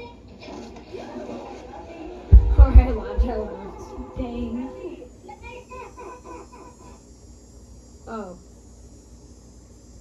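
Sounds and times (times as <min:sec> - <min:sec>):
faint voices from television: 0:00.0 - 0:08.6.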